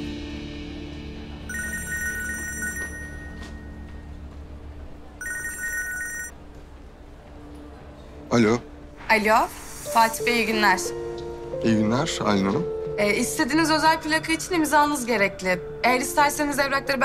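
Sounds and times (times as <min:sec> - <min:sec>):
background music: 0:00.0 - 0:17.0
mobile phone ringtone trilling: 0:01.5 - 0:03.8, 0:05.2 - 0:06.4.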